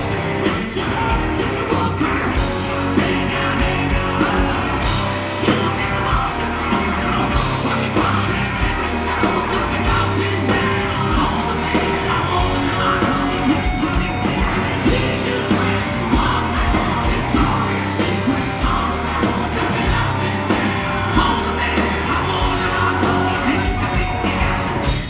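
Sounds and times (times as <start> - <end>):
drums on a steady beat: 0.0 - 25.0
electric guitar and bass: 0.0 - 25.0
singer yelling and singing: 0.0 - 25.0.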